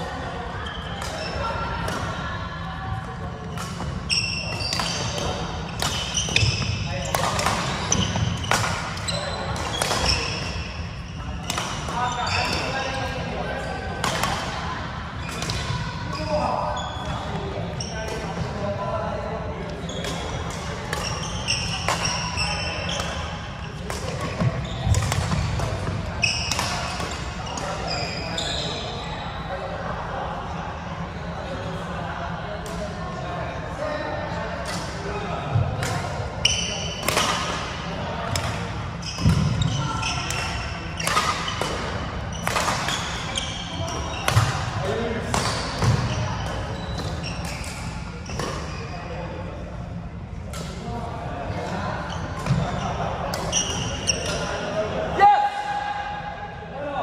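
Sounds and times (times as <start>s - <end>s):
shoes squeaking on wooden court: 0.6s - 1.4s, 3.5s - 13.0s, 15.2s - 18.4s, 19.8s - 29.0s, 36.4s - 37.5s, 38.3s - 44.7s, 45.3s - 49.1s, 52.0s - 54.7s
rackets striking shuttlecock: 3.6s - 10.4s.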